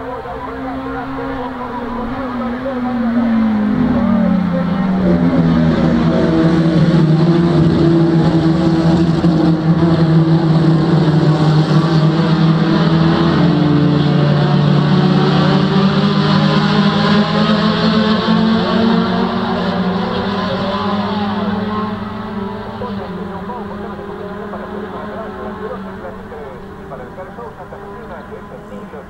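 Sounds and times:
race car engines: 0.0 - 29.0.

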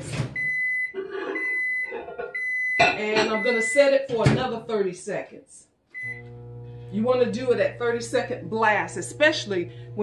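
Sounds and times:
microwave beeping: 0.4 - 4.1, 6.0 - 10.0.

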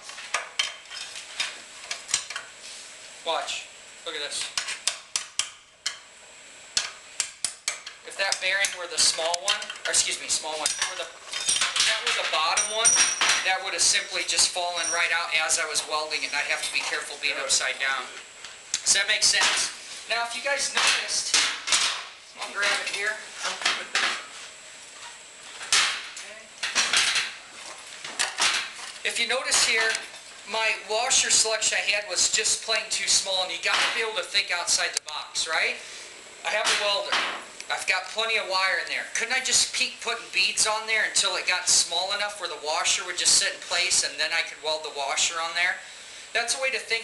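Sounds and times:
metal tools clanking: 8.6 - 13.5, 14.7 - 15.2.

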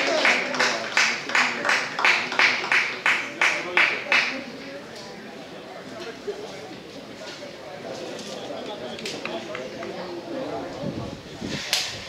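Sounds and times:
spectators talking: 0.0 - 12.0
sharp crack: 11.6 - 12.0.

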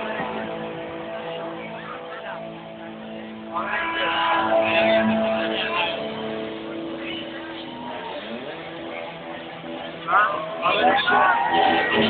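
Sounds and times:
ringing electric guitar chord: 0.0 - 10.6
live rock band through pa: 0.0 - 12.0
voices: 0.0 - 12.0.

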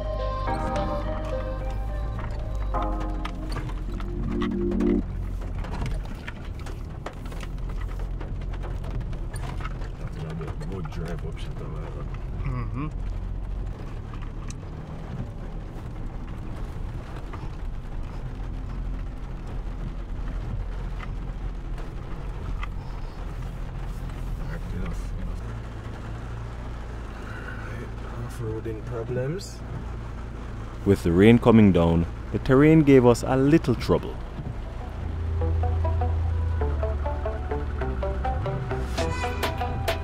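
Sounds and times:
music: 0.0 - 5.0, 34.8 - 40.0
pickup truck engine rumble: 0.0 - 28.8, 29.6 - 40.0.

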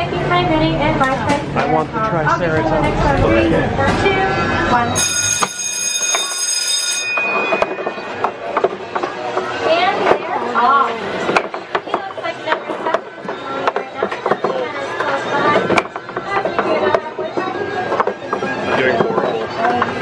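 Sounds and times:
voices: 7.9 - 20.0.

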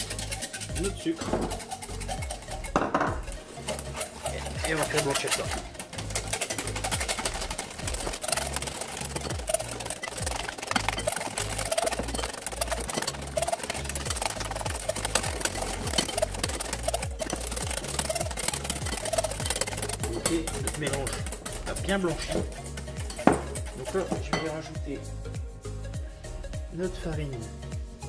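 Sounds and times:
wire whisk clicking against glass: 0.0 - 23.6
background music with bass line: 0.0 - 28.0.

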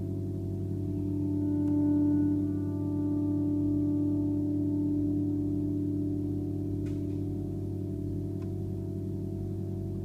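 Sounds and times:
harp strings droning: 0.6 - 10.0.

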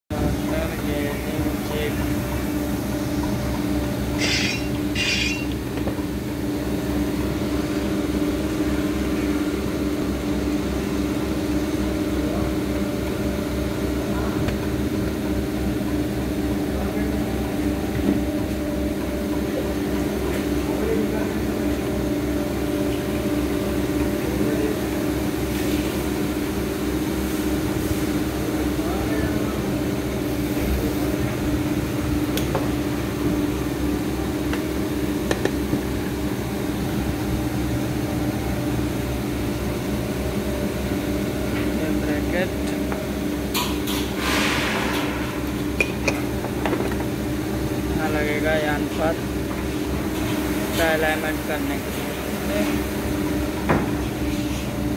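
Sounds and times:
machinery drone: 0.1 - 10.4.

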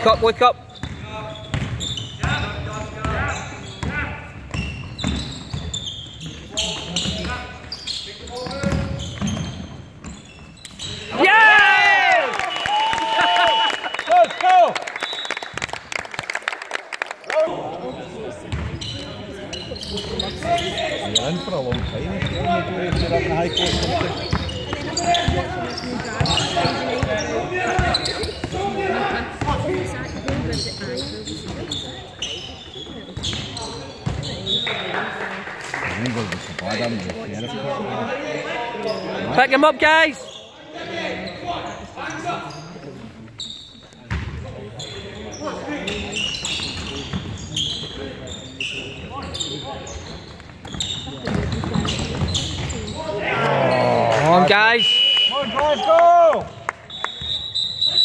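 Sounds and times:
basketball bouncing on hall floor: 0.1 - 5.8, 8.3 - 10.9, 18.5 - 19.1, 21.7 - 28.7, 32.9 - 34.5, 44.0 - 44.5, 50.1 - 52.9
whistle tone: 15.0 - 15.4, 54.7 - 55.9, 56.9 - 58.0.

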